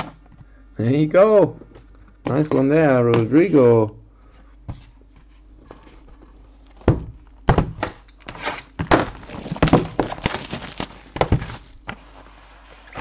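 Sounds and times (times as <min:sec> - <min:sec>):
packaging rustling: 0:08.1 - 0:13.0.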